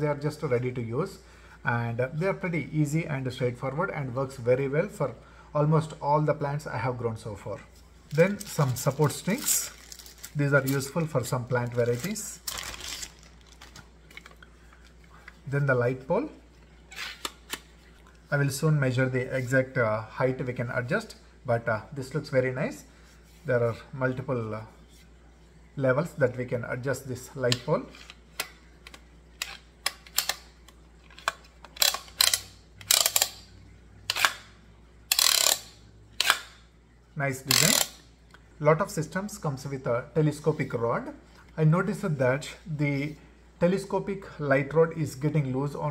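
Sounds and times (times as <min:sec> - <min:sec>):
plastic clicks: 0:27.5 - 0:33.4.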